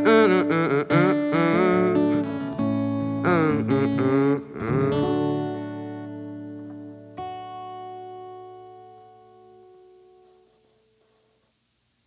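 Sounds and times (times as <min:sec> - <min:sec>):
person singing wordless vocal: 0:00.0 - 0:02.4, 0:03.2 - 0:05.8
acoustic guitar chords: 0:00.0 - 0:11.2.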